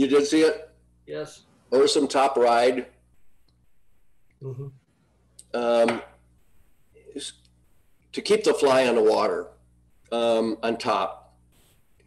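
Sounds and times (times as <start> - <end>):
man saying um: 4.4 - 4.8.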